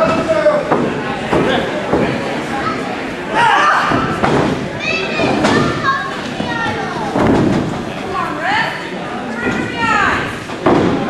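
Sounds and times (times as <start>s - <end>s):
crowd shouting and yelling: 0.0s - 11.0s.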